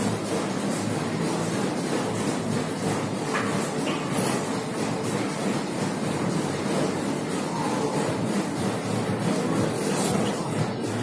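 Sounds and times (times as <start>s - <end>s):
busy gym rumble: 0.0s - 11.0s.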